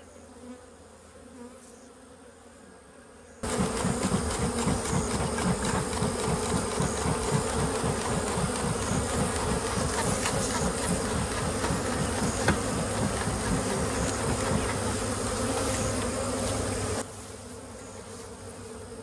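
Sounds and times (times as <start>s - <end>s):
honey bees buzzing: 0.0s - 19.0s.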